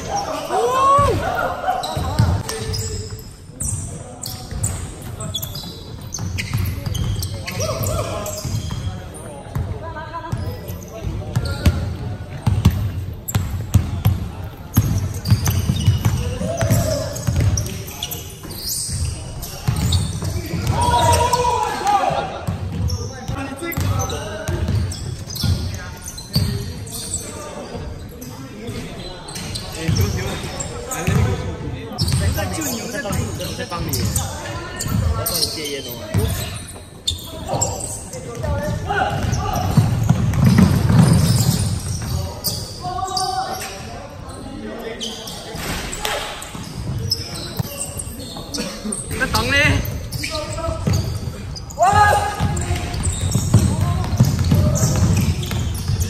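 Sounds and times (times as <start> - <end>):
players calling out: 0.0 - 11.9, 12.6 - 28.2, 29.0 - 56.0
basketball bouncing on hardwood floor: 14.8 - 17.6, 39.2 - 42.1, 51.9 - 56.0.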